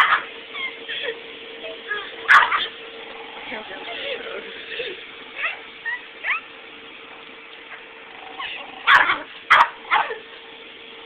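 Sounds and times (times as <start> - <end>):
small dog yipping and barking: 0.0 - 0.8, 1.9 - 2.8, 5.4 - 6.5, 8.4 - 10.2.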